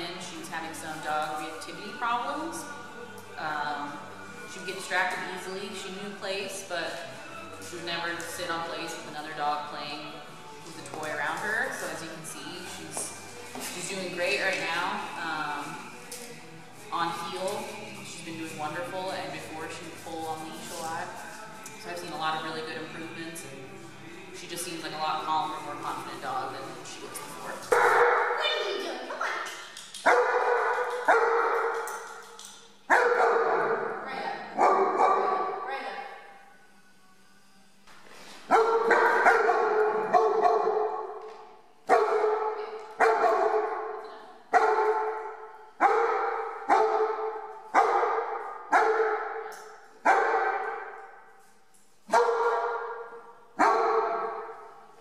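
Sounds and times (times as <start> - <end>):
dog barking with echo: 27.7 - 28.4, 30.0 - 31.9, 32.9 - 34.0, 34.6 - 35.6, 38.5 - 41.2, 41.9 - 51.0, 52.1 - 54.7.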